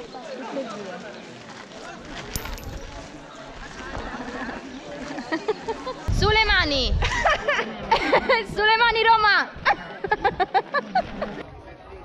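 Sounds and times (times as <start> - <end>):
people talking outdoors: 0.0 - 12.0.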